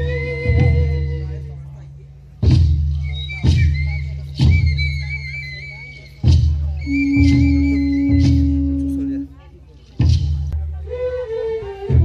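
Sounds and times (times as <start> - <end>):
large drum heavy beats: 0.0 - 9.3, 9.9 - 10.9.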